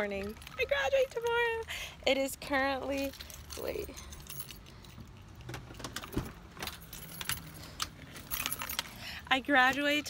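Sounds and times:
keys jangling: 0:00.0 - 0:01.7, 0:02.8 - 0:10.0.

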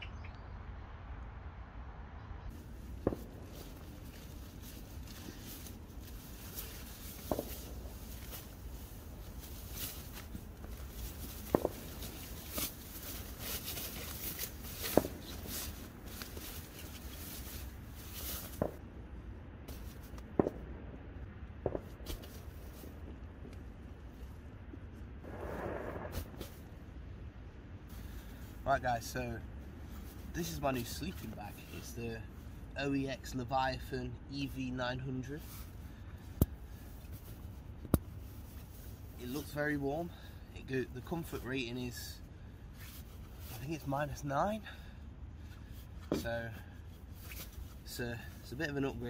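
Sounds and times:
tent fabric rustling: 0:02.5 - 0:18.8, 0:19.7 - 0:20.2, 0:26.0 - 0:26.8, 0:35.4 - 0:40.1, 0:42.6 - 0:44.6, 0:45.5 - 0:49.0.

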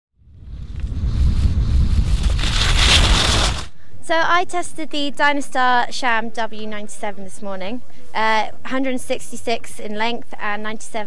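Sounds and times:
wind buffeting microphone: 0:00.2 - 0:03.7.

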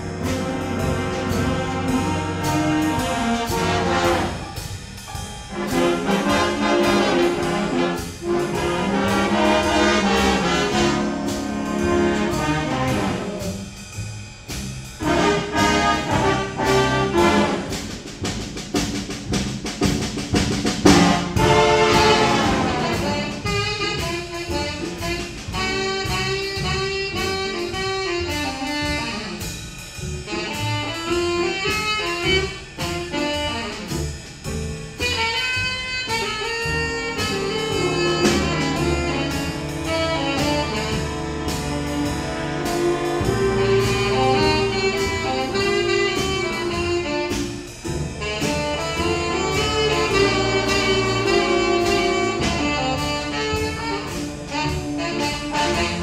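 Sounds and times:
jazz band brass playing: 0:00.0 - 0:56.0
saxophone solo: 0:21.2 - 0:29.6, 0:30.3 - 0:34.1, 0:35.0 - 0:56.0.

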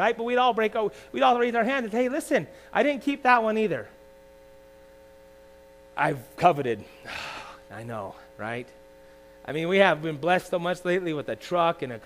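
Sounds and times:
faint steady hum of tones: 0:00.0 - 0:12.0.

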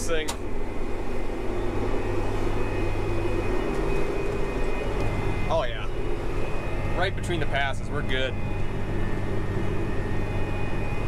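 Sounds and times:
tractor engine drone: 0:00.0 - 0:11.0.

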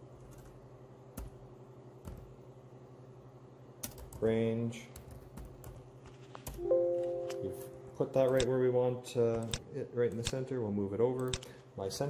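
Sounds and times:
steady low hum: 0:00.0 - 0:12.0
computer keyboard keystrokes: 0:03.8 - 0:04.3, 0:09.3 - 0:10.4, 0:11.2 - 0:11.5.

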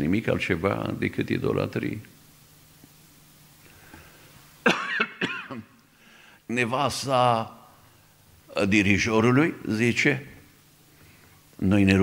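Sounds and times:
man coughing: 0:04.7 - 0:05.7.

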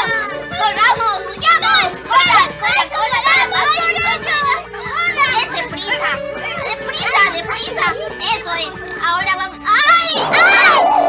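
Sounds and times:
cartoon voices shouting excitedly: 0:00.0 - 0:08.5, 0:09.6 - 0:11.0
faint background music: 0:00.0 - 0:11.0.

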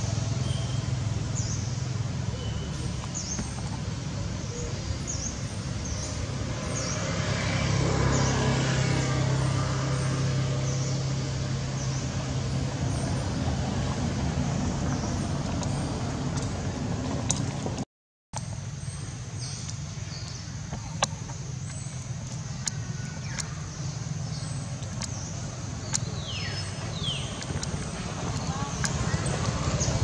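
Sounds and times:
vehicle engine humming: 0:00.0 - 0:30.0.

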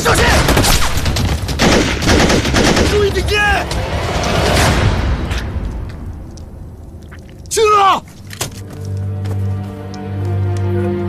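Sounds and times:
automatic gunfire: 0:00.5 - 0:03.0
man shouting: 0:07.5 - 0:08.1.

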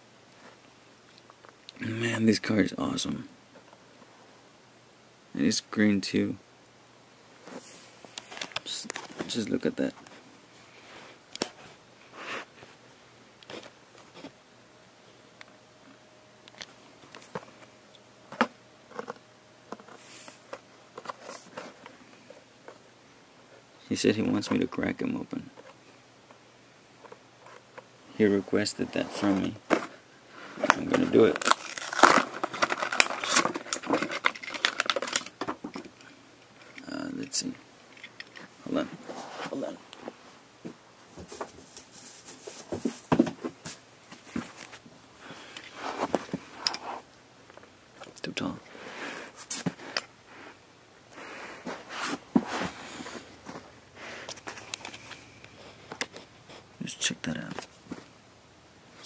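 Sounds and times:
plastic packaging clicks and crinkles: 0:30.6 - 0:37.3.

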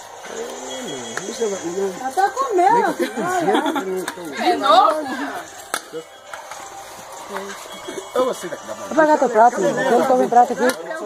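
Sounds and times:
indistinct background talk: 0:00.0 - 0:11.0.

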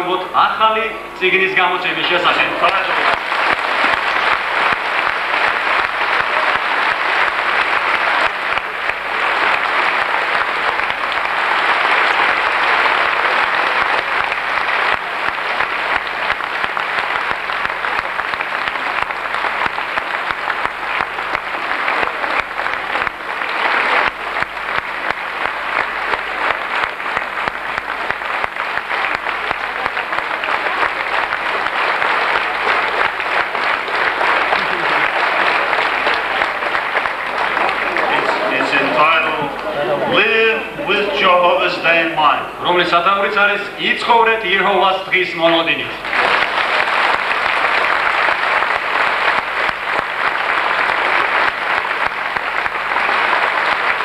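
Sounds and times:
audience applauding: 0:01.0 - 0:54.0.

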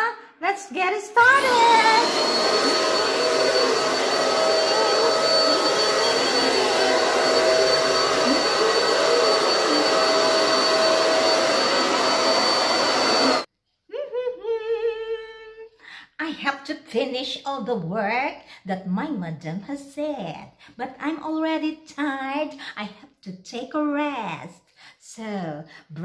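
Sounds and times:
vacuum cleaner running: 0:01.2 - 0:13.5.

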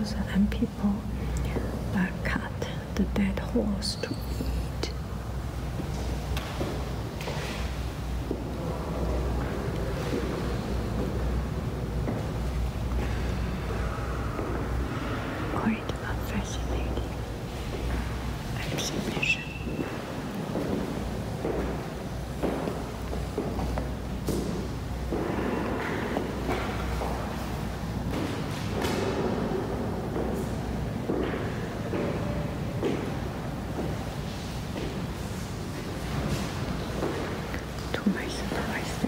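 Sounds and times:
low room rumble: 0:00.0 - 0:39.0.

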